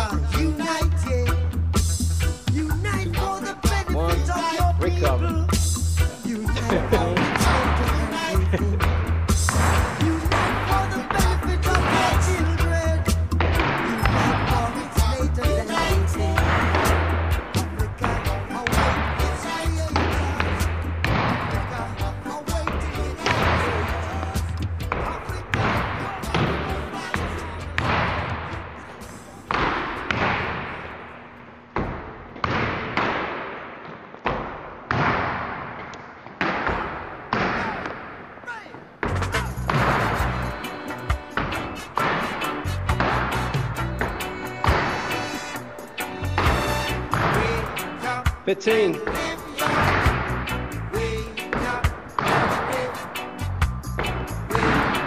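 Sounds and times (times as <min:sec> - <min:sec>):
reggae music with bass line: 0:00.0 - 0:30.4, 0:39.0 - 0:55.0
ball hitting wall in gym: 0:09.5 - 0:12.3, 0:19.9 - 0:21.9, 0:22.6 - 0:28.4, 0:29.5 - 0:31.1, 0:31.7 - 0:40.4, 0:44.0 - 0:45.1, 0:51.5 - 0:52.6.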